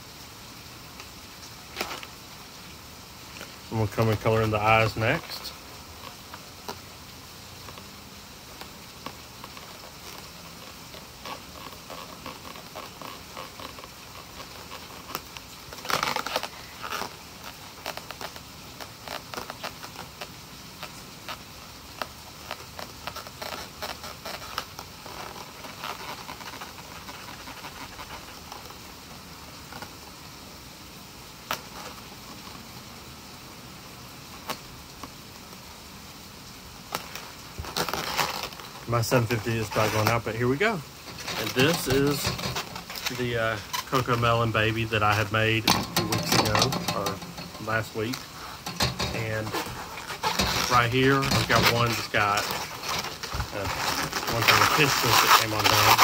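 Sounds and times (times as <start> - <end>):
rubbing of balloon figure: 7.6 - 30.0, 36.9 - 56.0
marker scratching on balloons: 9.0 - 28.8, 41.1 - 56.0.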